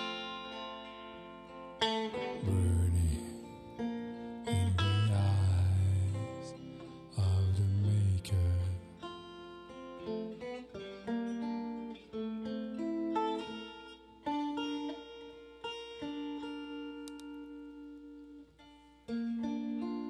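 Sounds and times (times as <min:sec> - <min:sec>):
solo guitar picking: 0:00.0 - 0:20.0.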